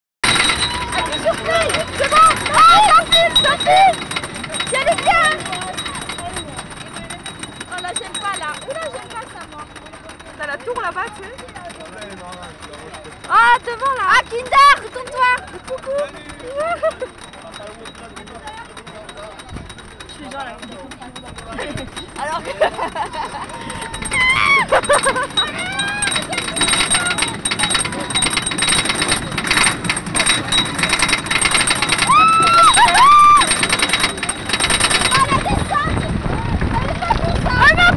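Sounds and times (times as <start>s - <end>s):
roller coaster train clicking on track: 0.2s - 37.9s
riders' voices: 0.3s - 37.9s.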